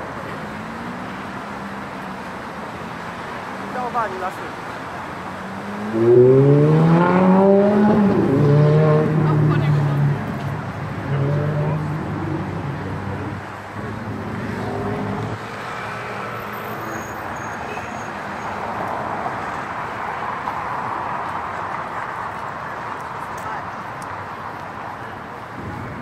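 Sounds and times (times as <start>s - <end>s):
faint traffic noise: 0.0s - 26.0s
vehicle engine speeding up: 5.4s - 15.4s.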